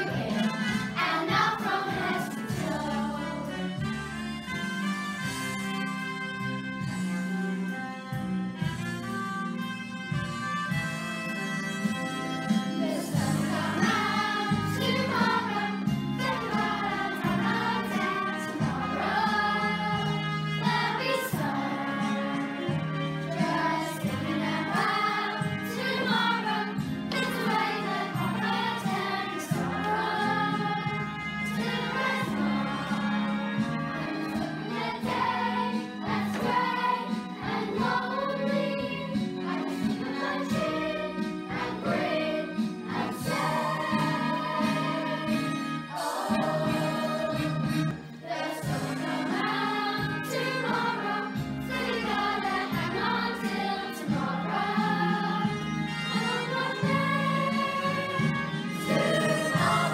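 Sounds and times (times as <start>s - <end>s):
children's choir singing: 0.0s - 4.1s, 11.9s - 59.9s
instrumental accompaniment: 0.0s - 59.9s.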